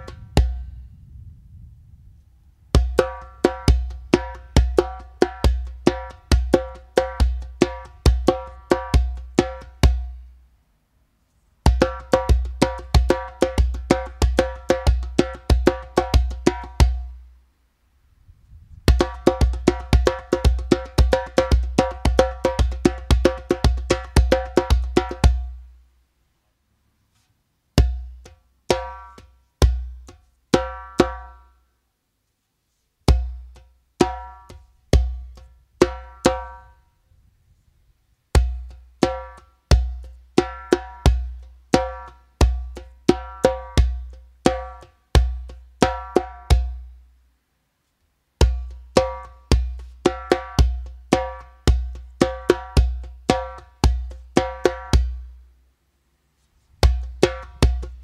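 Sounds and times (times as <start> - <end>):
djembe bass strokes: 0.0 - 1.0, 18.6 - 25.6, 48.4 - 55.3, 56.8 - 58.0
djembe slaps: 2.8 - 10.1, 11.7 - 17.1, 18.9 - 25.6, 27.8 - 31.4, 38.4 - 46.8, 48.4 - 55.2, 56.8 - 58.0.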